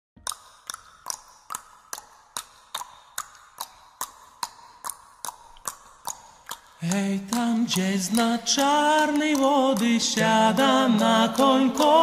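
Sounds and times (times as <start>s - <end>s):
clock ticking: 5.6s - 12.0s.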